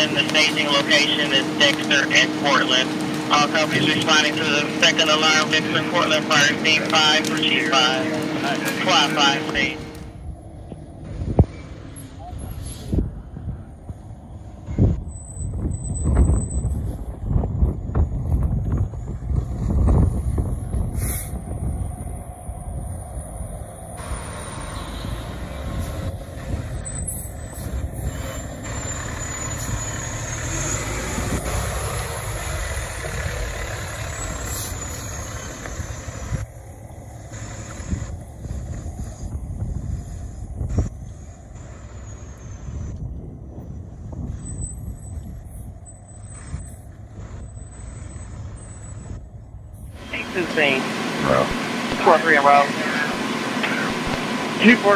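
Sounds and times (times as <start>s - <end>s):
fire truck engines rumbling: 0.0s - 54.9s.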